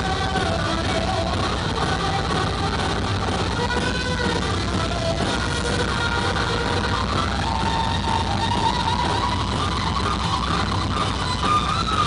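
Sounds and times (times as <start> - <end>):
heavy metal band playing: 0.0 - 12.0.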